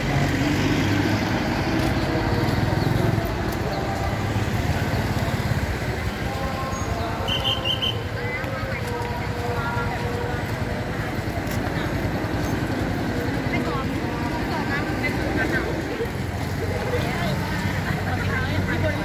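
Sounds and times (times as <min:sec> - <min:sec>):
passing cars and motorcycles: 0:00.0 - 0:19.0
students chattering: 0:00.0 - 0:19.0.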